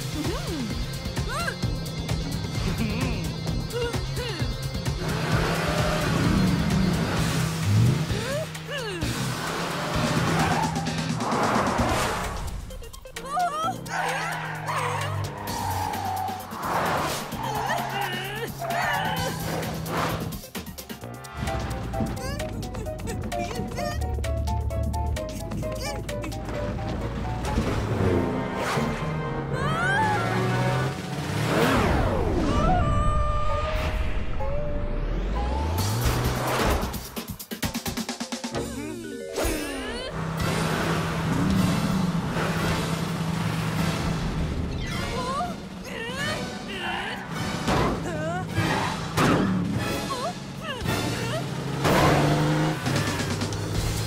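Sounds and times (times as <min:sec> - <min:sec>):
car engine droning and revving: 0:00.0 - 0:12.7, 0:13.7 - 0:23.7, 0:26.4 - 0:32.7, 0:33.7 - 0:37.2, 0:40.1 - 0:54.0
background music: 0:00.0 - 0:54.0
cartoon tyres squealing: 0:08.1 - 0:11.2, 0:12.9 - 0:20.3, 0:44.6 - 0:53.4.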